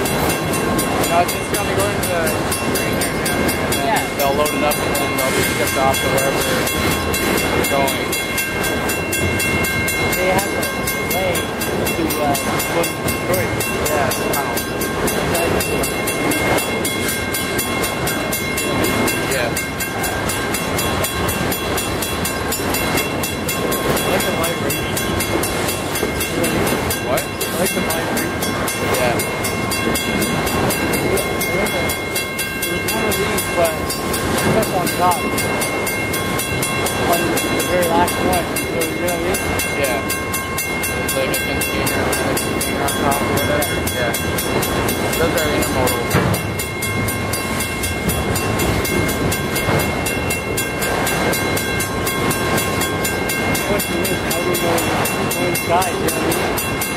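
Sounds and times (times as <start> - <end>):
high-pitched ringing: 0.0 - 56.9
train wheels rumbling on rails: 0.0 - 56.9.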